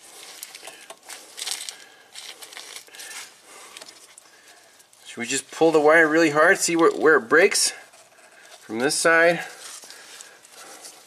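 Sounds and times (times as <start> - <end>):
crinkly rustling with clicks: 0.1 - 5.1, 9.5 - 11.0.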